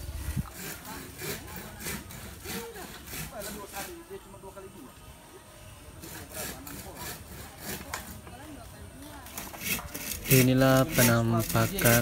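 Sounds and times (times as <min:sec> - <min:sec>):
hand saw cutting bamboo: 0:00.0 - 0:04.1, 0:06.0 - 0:08.4, 0:09.2 - 0:12.0.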